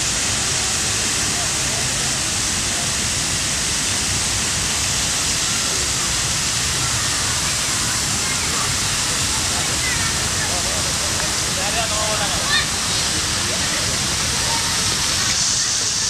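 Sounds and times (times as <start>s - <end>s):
faint voices: 0.0s - 16.0s
fountain water splashing: 0.0s - 16.0s.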